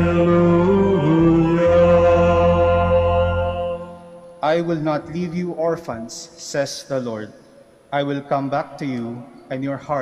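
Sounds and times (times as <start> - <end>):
choir holding a chord: 0.0 - 4.1.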